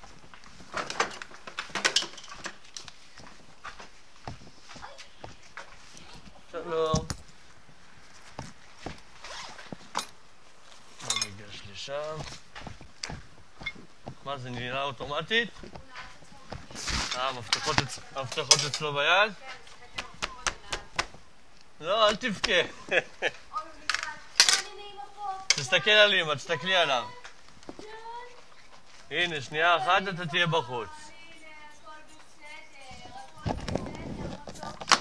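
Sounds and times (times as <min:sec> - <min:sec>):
zipper pulled open: 0:09.2 - 0:09.6.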